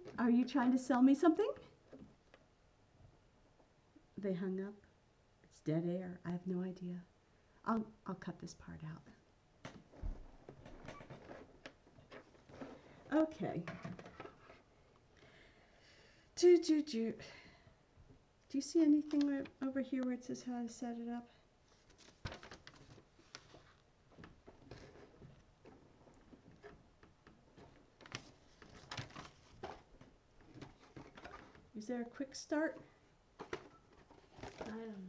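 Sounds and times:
woman speaking: 0.0 - 1.7, 4.2 - 4.8, 5.5 - 9.2, 13.1 - 13.8, 16.4 - 17.4, 18.5 - 21.4, 31.8 - 32.8, 34.6 - 35.0
soft clicks and rustles: 9.6 - 15.2, 19.0 - 20.2, 21.6 - 31.8, 32.6 - 35.0.

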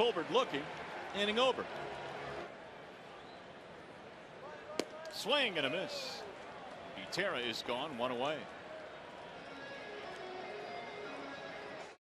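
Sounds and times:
baseball smacking into mitt: 4.8 - 5.1.

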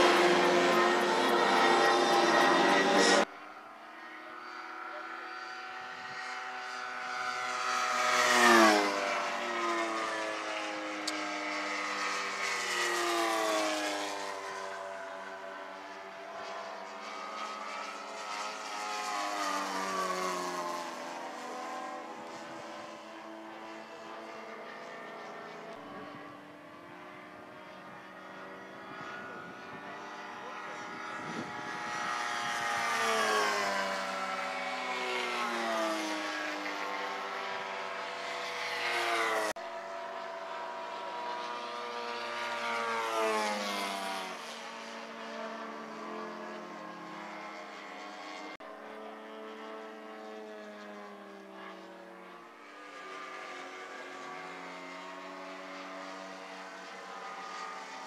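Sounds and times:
model plane engines flying by: 0.0 - 58.0.

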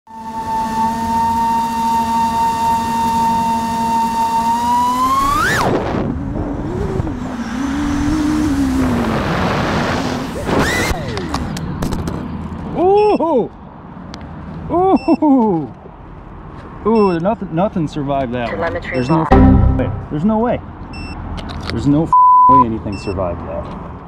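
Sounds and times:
drone motors whining: 0.1 - 11.6
drone crashing on ground: 19.3 - 20.2.

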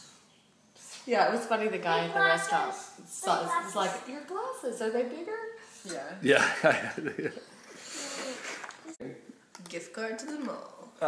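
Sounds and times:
people laughing: 6.3 - 7.6.

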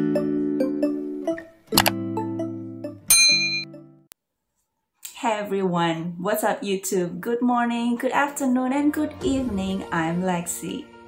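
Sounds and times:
mouse-click sound effect: 1.7 - 2.0
mallet-like jingle chords: 2.8 - 3.8
bright bell ding: 3.1 - 3.7.

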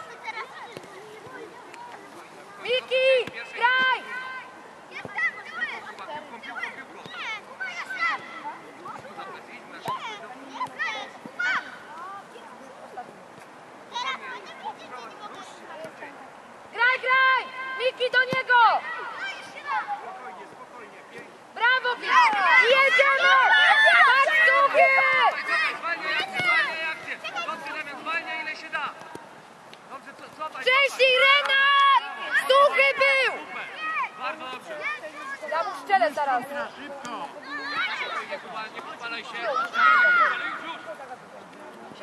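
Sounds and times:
young players shouting: 2.6 - 8.6, 9.8 - 11.9, 16.8 - 20.3, 21.6 - 29.0, 30.6 - 36.8, 37.4 - 41.0
children shouting and cheering: 21.6 - 27.8, 30.7 - 35.5, 37.4 - 38.4, 39.4 - 40.7.

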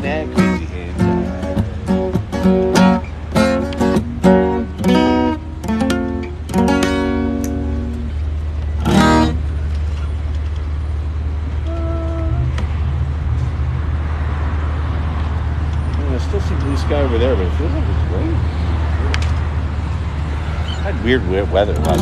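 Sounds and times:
acoustic guitar strummed: 0.0 - 8.2, 8.8 - 9.4
street traffic rumble: 0.0 - 22.0.

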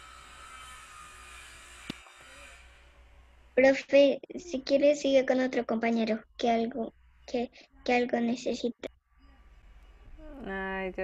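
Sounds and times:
hiss: 0.0 - 3.0
sharp click: 1.8 - 2.1.

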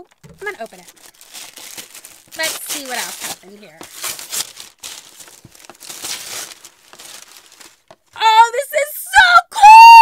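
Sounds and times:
packaging crinkling: 0.0 - 8.2.

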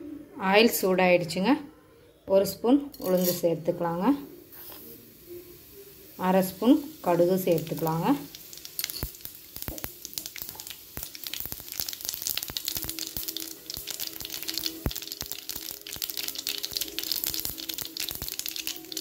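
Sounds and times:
oil sizzling and popping in pan: 2.9 - 19.0.

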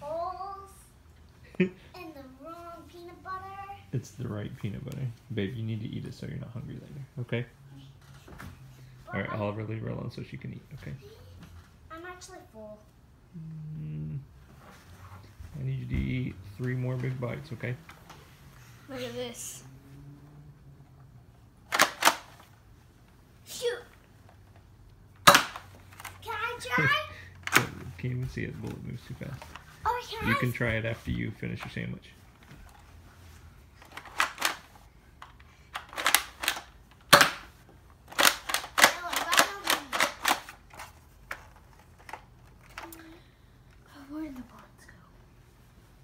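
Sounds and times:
toy blaster plastic clacks: 21.7 - 22.4, 33.8 - 37.5, 38.1 - 43.0
foam dart blaster clacks and snaps: 25.2 - 26.1, 35.8 - 37.5.

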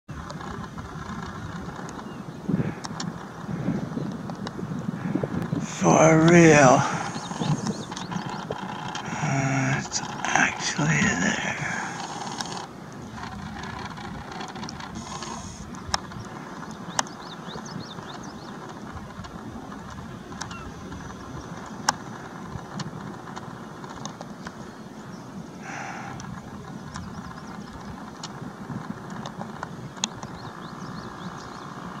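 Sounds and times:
sharp clicks: 6.2 - 20.6.

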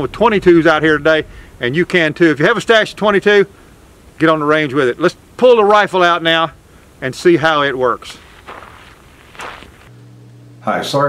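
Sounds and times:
low wind rumble: 0.0 - 9.9
steady low hum: 0.0 - 11.0
faint footsteps: 7.0 - 9.9.

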